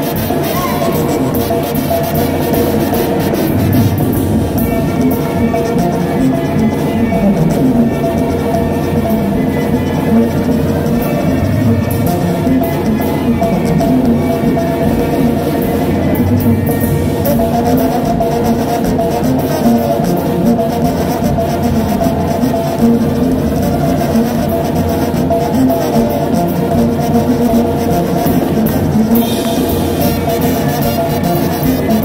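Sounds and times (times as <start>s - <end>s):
brass band playing: 0.0s - 32.0s.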